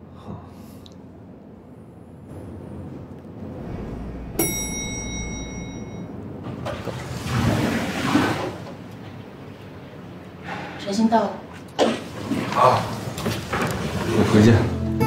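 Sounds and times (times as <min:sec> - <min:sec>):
lift humming: 0:01.6 - 0:07.0
rush of noise: 0:02.4 - 0:06.7
lift arrival chime: 0:04.3 - 0:06.5.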